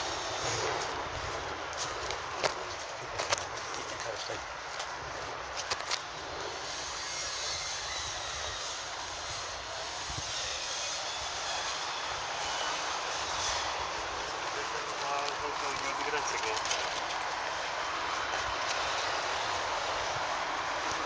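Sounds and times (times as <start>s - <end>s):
traffic engine noise: 0.0s - 21.0s.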